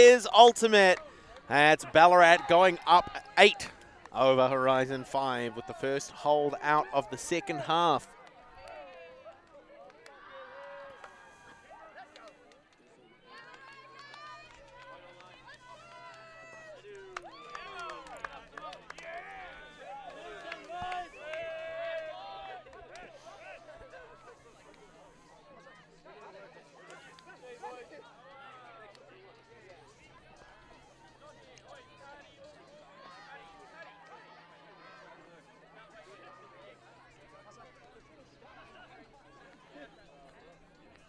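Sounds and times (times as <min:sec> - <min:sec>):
people talking and calling out: 0:00.0 - 0:41.0.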